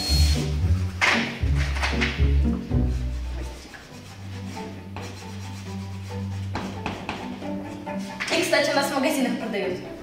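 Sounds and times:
quiet background music: 0.0 - 10.0
chalk scratching on blackboard: 2.7 - 8.3.

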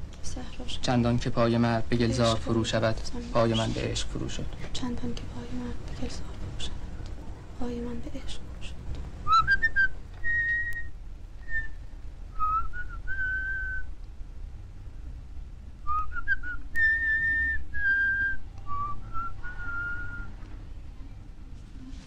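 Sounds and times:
person whistling a slow tune: 9.3 - 13.9, 15.9 - 20.4.

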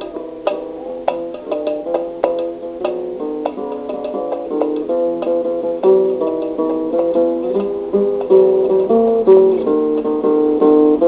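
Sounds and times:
acoustic guitar picking a melody: 0.0 - 11.0.

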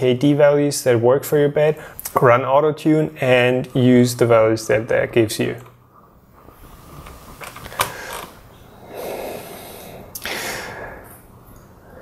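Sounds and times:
man breathing close to microphone: 5.9 - 12.0.

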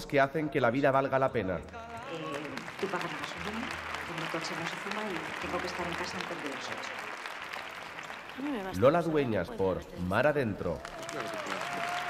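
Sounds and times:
woman's voice: 1.8 - 6.8
audience applause: 1.8 - 12.0.

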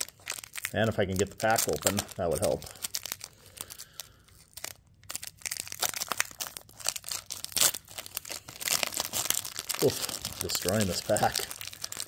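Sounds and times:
foil wrapper crinkling and tearing: 0.0 - 12.0.

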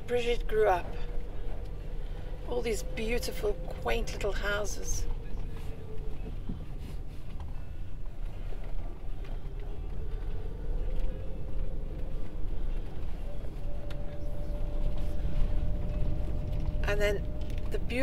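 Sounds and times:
engine and road rumble: 0.0 - 18.0
faint rising whine: 0.0 - 18.0.

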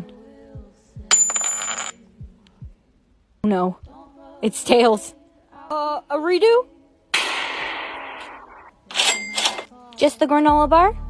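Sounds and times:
gunshot: 7.1 - 8.7.

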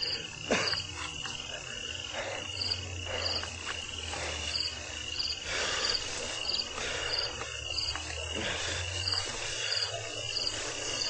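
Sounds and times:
crickets trilling: 0.0 - 11.0.

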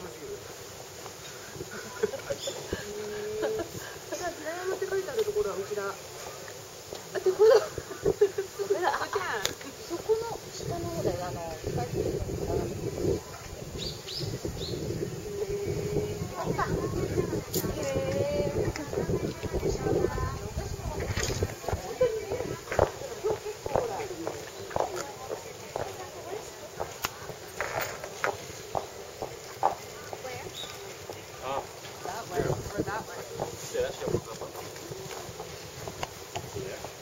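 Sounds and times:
people talking in background: 0.0 - 37.0
small bird chirping: 13.8 - 14.9, 30.4 - 30.8.

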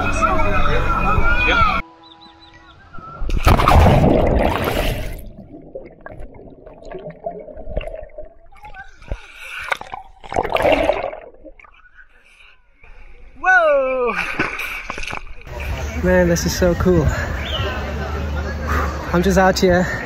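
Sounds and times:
water gurgling and sloshing: 3.2 - 12.8
person splashing into water: 3.3 - 11.7.

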